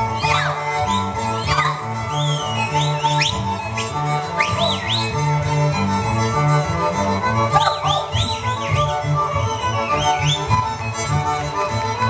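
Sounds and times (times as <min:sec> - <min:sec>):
high sliding whistles: 0:00.0 - 0:05.2, 0:07.6 - 0:10.6
folk string band playing dance tune: 0:00.0 - 0:12.0.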